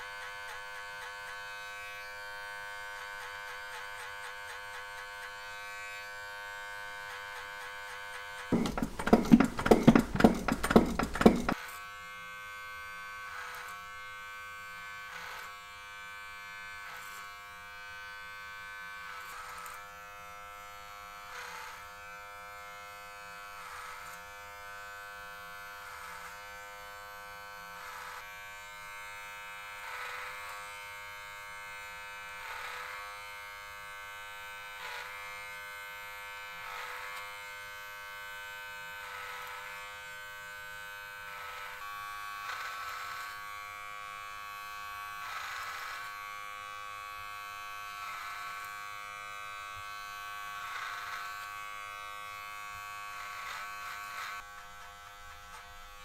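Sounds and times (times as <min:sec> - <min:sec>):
clippers rasping through hair: 0:00.0 - 0:11.7, 0:14.4 - 0:15.6, 0:19.0 - 0:20.0, 0:21.2 - 0:28.4, 0:29.0 - 0:30.9, 0:31.5 - 0:56.0
electric hair clippers humming: 0:00.0 - 0:56.0.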